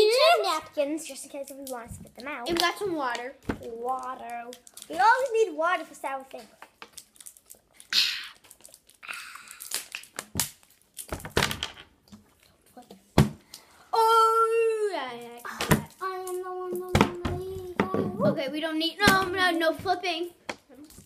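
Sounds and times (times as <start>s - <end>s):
plastic bottles crinkling: 1.2s - 12.8s
children drinking from bottles: 7.0s - 10.4s.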